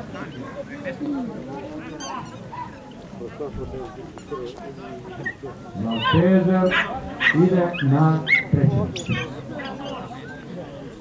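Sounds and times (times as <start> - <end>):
crowd murmur: 0.0 - 11.0
dogs whining and yelping: 5.2 - 10.4.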